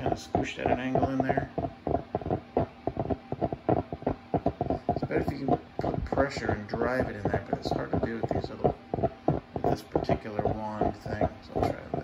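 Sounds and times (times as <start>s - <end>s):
steam machine bubbling and sputtering: 0.0s - 12.0s.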